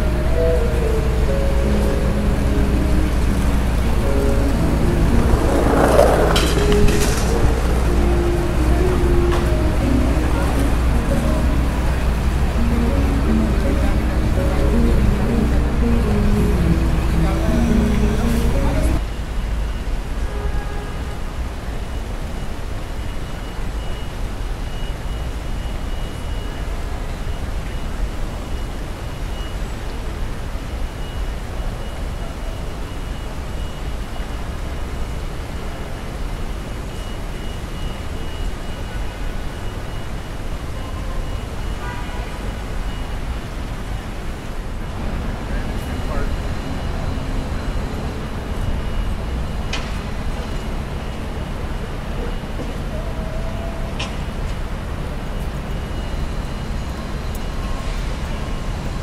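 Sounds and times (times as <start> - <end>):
voices of passers-by: 0.0 - 19.1, 31.3 - 59.0
traffic rumble: 0.0 - 20.3, 21.0 - 59.0.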